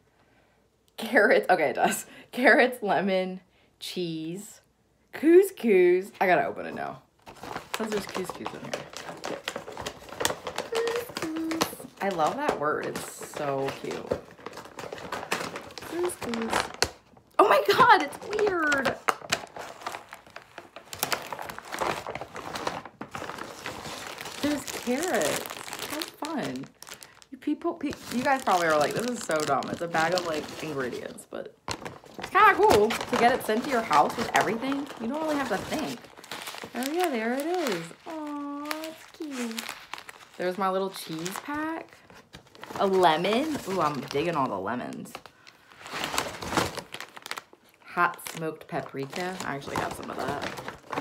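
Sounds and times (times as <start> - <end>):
paper bag and packets rustling: 6.3 - 51.0.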